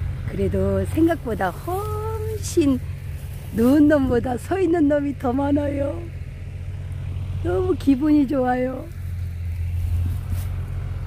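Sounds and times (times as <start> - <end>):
combine harvester engine drone: 0.0 - 11.0.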